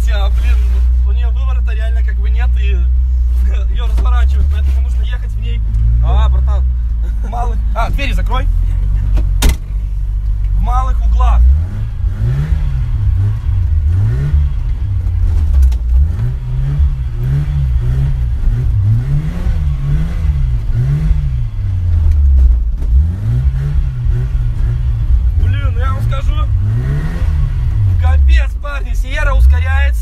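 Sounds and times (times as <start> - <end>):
car engine revving: 0.0 - 30.0.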